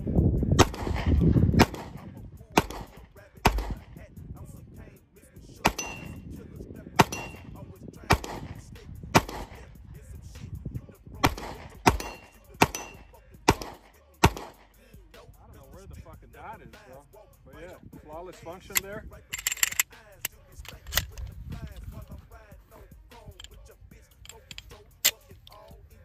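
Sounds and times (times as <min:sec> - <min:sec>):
pistol shots: 0:00.6 - 0:04.0, 0:05.6 - 0:06.3, 0:07.0 - 0:09.8, 0:11.2 - 0:14.8
ring of steel targets: 0:05.7 - 0:06.3, 0:07.0 - 0:07.6, 0:11.3 - 0:14.7.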